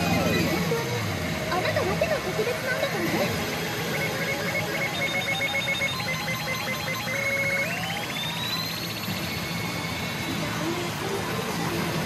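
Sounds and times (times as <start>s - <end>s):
rising trilling electronic tone: 0.0s - 10.8s
rapid pulsing electronic beeps: 0.0s - 12.0s.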